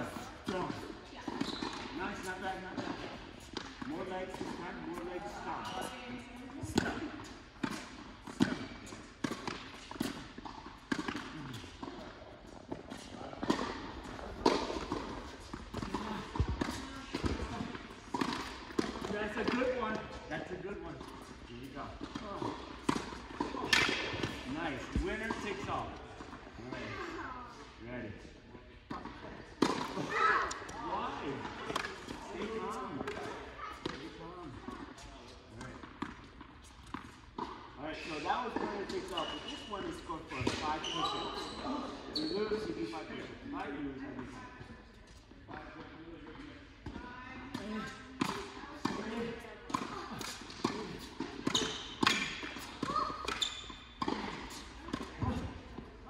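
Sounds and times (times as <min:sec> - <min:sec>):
balls bouncing on hard court: 0:00.1 - 0:20.2, 0:20.9 - 0:26.4, 0:28.9 - 0:42.7, 0:46.4 - 0:55.9
tennis balls struck by rackets: 0:00.1 - 0:20.2, 0:20.9 - 0:26.5, 0:28.8 - 0:37.8, 0:40.2 - 0:40.8, 0:45.8 - 0:56.0.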